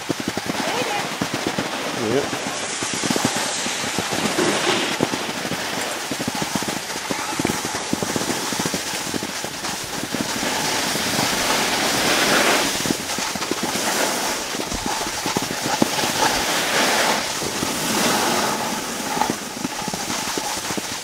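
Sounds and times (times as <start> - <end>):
skis scraping on snow: 0.0 - 21.0.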